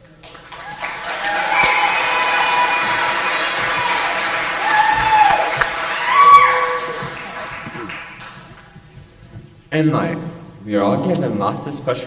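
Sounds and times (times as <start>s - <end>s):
audience applauding: 0.0s - 8.8s
whoops and shouts: 0.6s - 7.3s.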